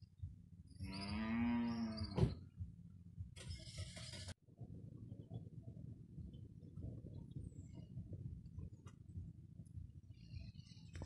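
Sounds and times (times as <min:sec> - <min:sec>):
cow mooing: 0:00.8 - 0:02.2.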